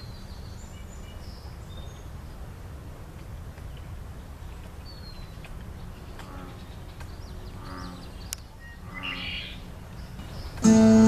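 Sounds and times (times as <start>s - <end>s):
low outdoor background: 0.0s - 11.0s
acoustic guitar music: 10.6s - 11.0s.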